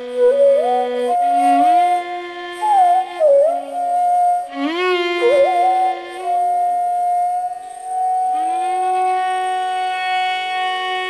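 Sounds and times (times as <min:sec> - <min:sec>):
bamboo flute melody: 0:00.0 - 0:11.0
violin melody: 0:00.0 - 0:11.0.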